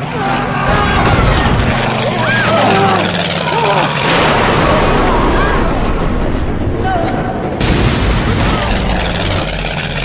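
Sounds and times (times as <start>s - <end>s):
people screaming and crying out: 0.0s - 6.0s
aircraft hold roar: 0.0s - 10.0s.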